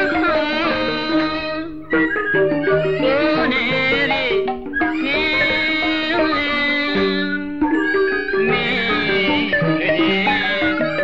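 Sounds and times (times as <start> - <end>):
person singing: 0.0 - 11.0
traditional ensemble accompaniment: 0.0 - 11.0.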